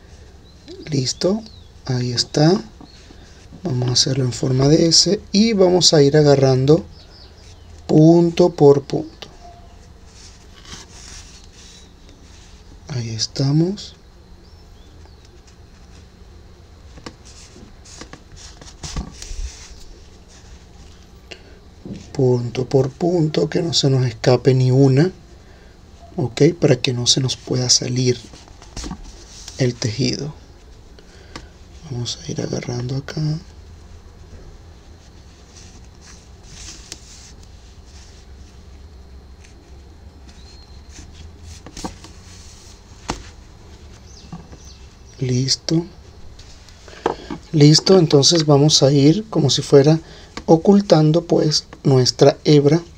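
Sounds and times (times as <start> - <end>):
faint steady hum: 0.0 - 52.9
yarn rustling through fabric: 14.8 - 21.2, 26.9 - 49.9
yarn rustling and scratching: 33.4 - 45.2.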